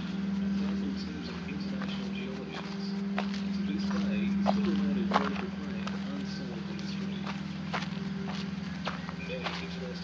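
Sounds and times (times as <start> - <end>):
footsteps on hard ground: 0.0 - 10.0
steady low hum: 0.0 - 10.0.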